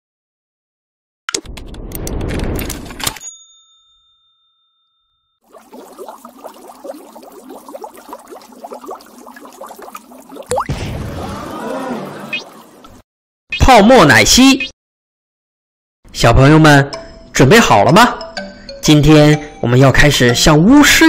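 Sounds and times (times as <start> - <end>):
ringing ding: 3.2 - 5.4
bubbling blips: 5.4 - 13.0
small explosion burst: 10.5 - 12.8
cartoon whoosh: 10.5 - 13.0.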